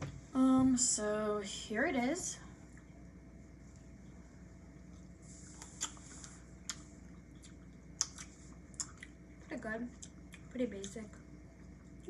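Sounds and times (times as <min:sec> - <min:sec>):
low room hum: 0:00.0 - 0:12.0
chewing candy mouth clicks: 0:05.6 - 0:09.2.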